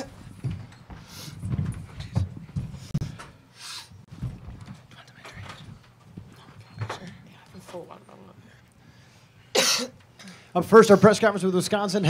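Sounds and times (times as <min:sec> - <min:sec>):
rustling and small knocks: 0:00.1 - 0:03.4, 0:04.0 - 0:07.9
person coughing: 0:09.5 - 0:10.4.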